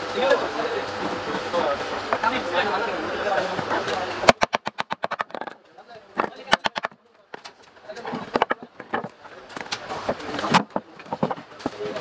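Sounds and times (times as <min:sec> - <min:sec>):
voices: 0:00.0 - 0:12.0
wooden mallet knocking on bat: 0:06.2 - 0:07.0.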